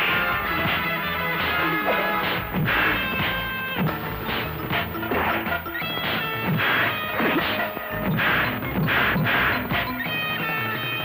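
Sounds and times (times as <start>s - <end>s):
heavy punch impacts: 0.0s - 9.9s
film music score: 0.0s - 11.0s.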